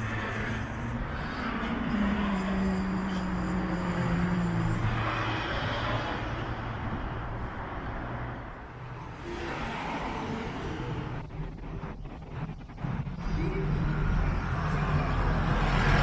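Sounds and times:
cars driving past: 0:00.0 - 0:16.0
steady background hum: 0:08.5 - 0:16.0.

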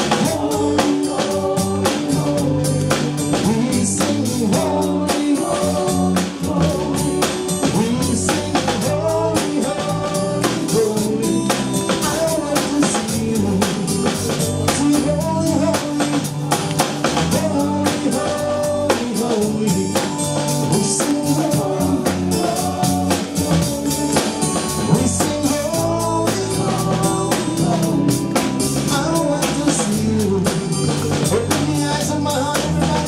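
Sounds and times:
man singing into microphone: 0:00.0 - 0:16.4, 0:17.2 - 0:33.0
band playing gospel music: 0:00.0 - 0:33.0
drum kit beat: 0:00.0 - 0:33.0.

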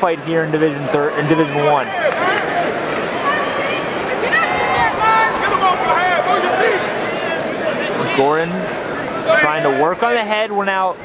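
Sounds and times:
crowd noise: 0:00.0 - 0:11.0
spectators shouting: 0:00.8 - 0:10.5.

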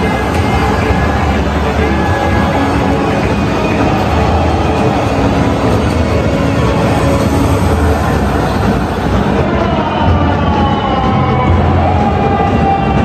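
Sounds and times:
crowd noise: 0:00.0 - 0:13.0
music over public address: 0:00.0 - 0:13.0.

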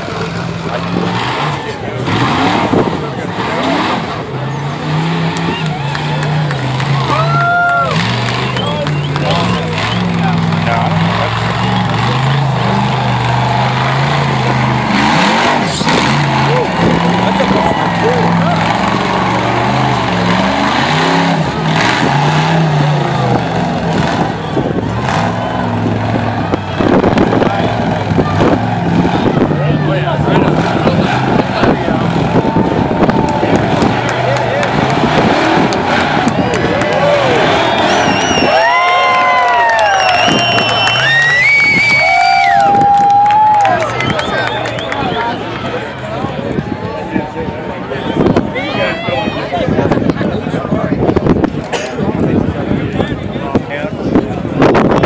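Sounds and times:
race car engine revving: 0:00.0 - 0:55.0
spectators talking: 0:00.0 - 0:55.0
crowd whooping: 0:04.9 - 0:49.8.

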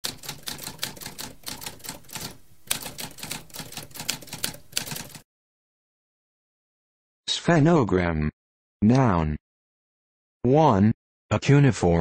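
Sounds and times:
typewriter keys clicking: 0:00.0 - 0:05.2.

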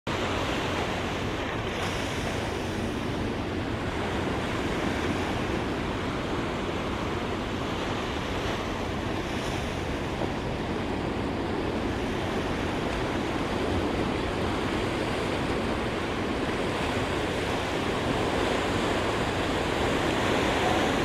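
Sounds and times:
surf washing on shore: 0:00.1 - 0:21.0
wind rumbling on microphone: 0:00.1 - 0:21.0.

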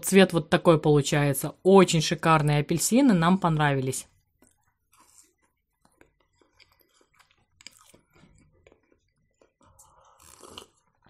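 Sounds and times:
faint chewing: 0:04.1 - 0:11.0.

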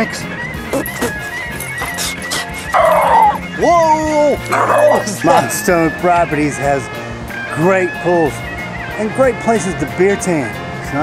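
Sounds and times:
background music: 0:00.0 - 0:11.0
dog barking: 0:02.6 - 0:03.4, 0:04.5 - 0:05.1.

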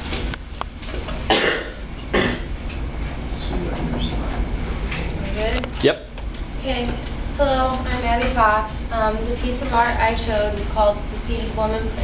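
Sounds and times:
low room rumble: 0:00.0 - 0:12.0
person coughing: 0:01.3 - 0:02.5.

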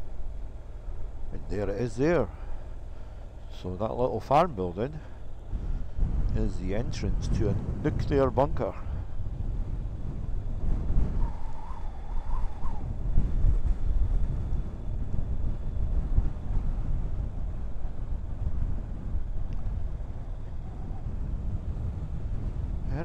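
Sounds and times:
wind rumbling on microphone: 0:00.0 - 0:23.0.

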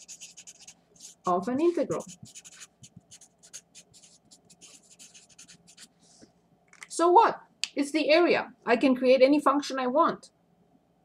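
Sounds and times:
marker pen scratching on paper: 0:00.0 - 0:05.9.

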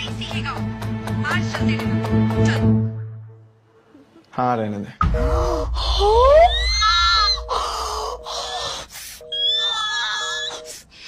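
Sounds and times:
shrill high wail: 0:05.9 - 0:10.7
telephone line tone beeping: 0:07.2 - 0:10.8.

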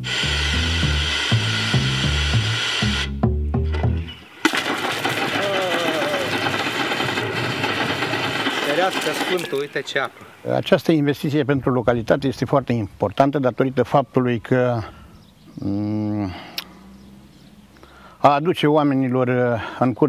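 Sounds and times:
plucked bass line: 0:00.0 - 0:04.2
man exclaiming: 0:05.2 - 0:06.4, 0:15.6 - 0:16.4.

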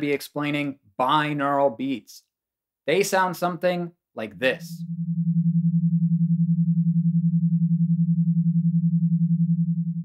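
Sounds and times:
pulsing low sine tone: 0:04.7 - 0:10.0.

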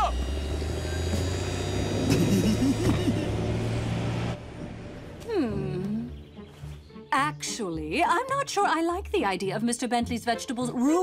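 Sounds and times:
cartoon truck engine hum: 0:00.0 - 0:06.4
short laugh: 0:02.1 - 0:03.4.

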